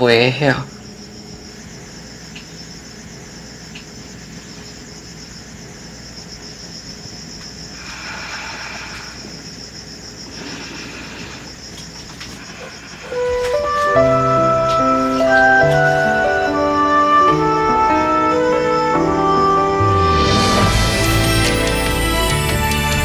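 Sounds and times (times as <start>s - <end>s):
night insects chirping: 0.0s - 23.0s
soft flute melody: 13.1s - 23.0s.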